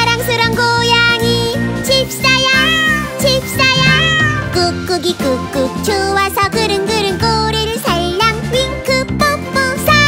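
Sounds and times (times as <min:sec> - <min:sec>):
upbeat children's song: 0:00.0 - 0:10.0
short meows: 0:03.6 - 0:04.7.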